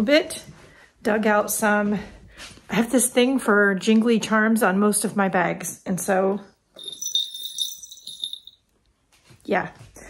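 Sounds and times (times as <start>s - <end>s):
metal charms jingling: 6.8s - 8.6s.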